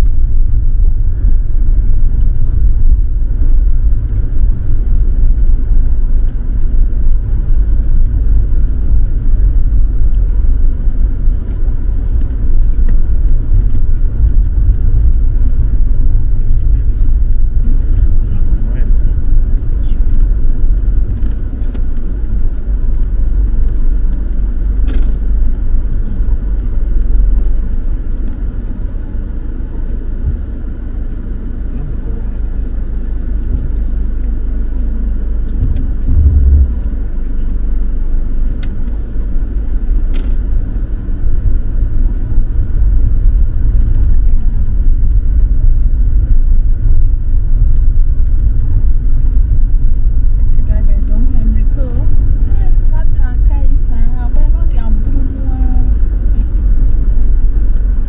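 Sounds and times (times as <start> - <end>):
car rumbling on dirt road: 0.0 - 58.0.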